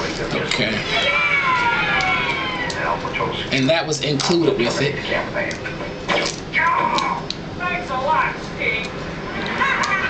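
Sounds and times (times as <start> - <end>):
high-pitched descending cry: 0.9 - 2.9.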